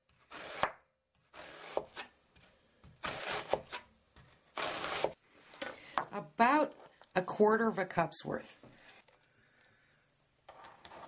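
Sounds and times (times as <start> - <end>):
knife slicing onion: 0.0 - 5.2.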